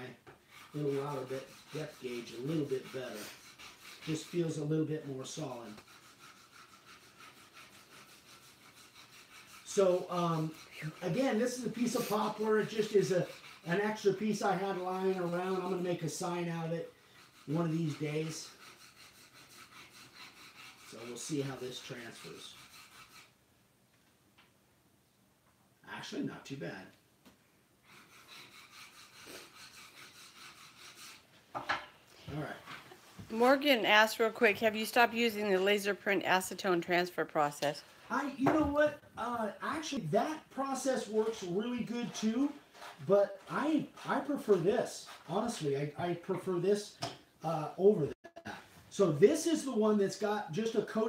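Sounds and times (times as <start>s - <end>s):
metal scraping paper on wood: 0.5s - 16.2s, 17.1s - 23.3s, 27.9s - 31.2s, 40.8s - 45.6s.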